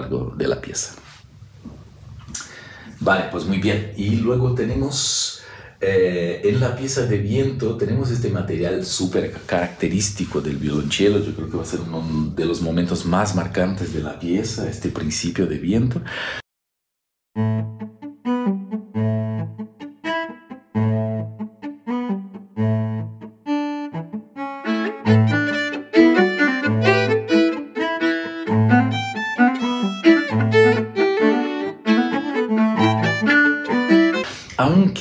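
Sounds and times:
violin and viola playing: 0:17.4 - 0:34.4
cello playing driving figure: 0:17.4 - 0:34.8.

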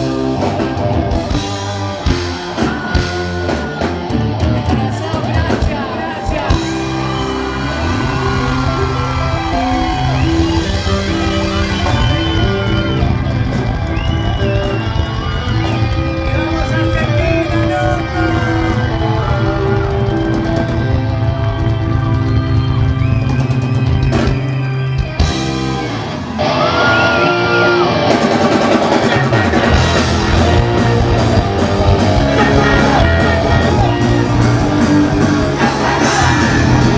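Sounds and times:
live rock band playing: 0:00.0 - 0:36.9.

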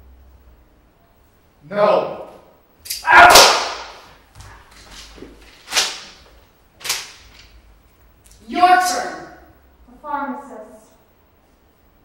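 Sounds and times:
short quieter cracks: 0:02.8 - 0:04.2
loud sharp gunshot crack: 0:03.1 - 0:04.1.

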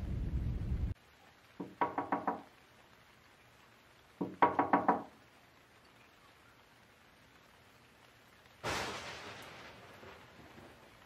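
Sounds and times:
knocking on a door: 0:01.6 - 0:02.5, 0:04.2 - 0:05.1.

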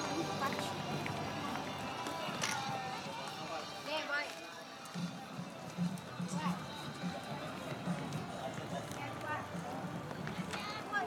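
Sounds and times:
people talking: 0:00.0 - 0:04.4
faint background music: 0:00.0 - 0:11.0.

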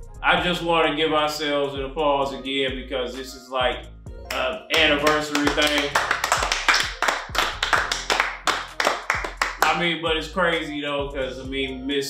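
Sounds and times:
men clapping: 0:04.3 - 0:09.8.

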